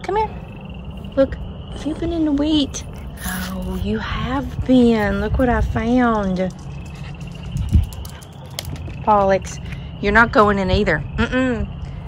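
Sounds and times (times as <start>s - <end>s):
frogs chorus: 0.0s - 12.0s
wind rumble on microphone: 1.0s - 12.0s.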